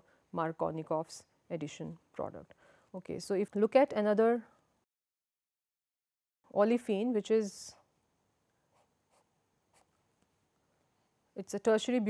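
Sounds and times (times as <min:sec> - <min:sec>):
marker pen scratching on paper: 0:08.7 - 0:09.9.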